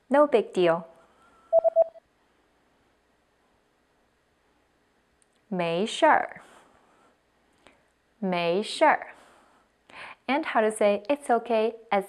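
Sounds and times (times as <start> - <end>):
electronic beeps: 1.5 - 2.0.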